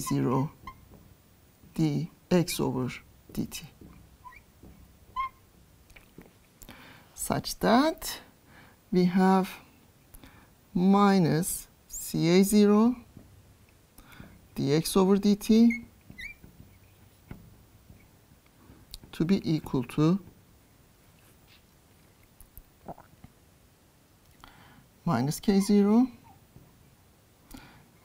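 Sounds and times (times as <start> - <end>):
marker squeaking on glass: 0.0 - 1.0, 3.8 - 5.6, 15.2 - 18.2, 25.4 - 26.4.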